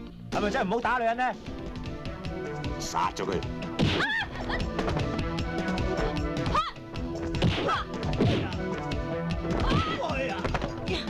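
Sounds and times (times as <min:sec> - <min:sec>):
trailer music: 0:00.0 - 0:11.0.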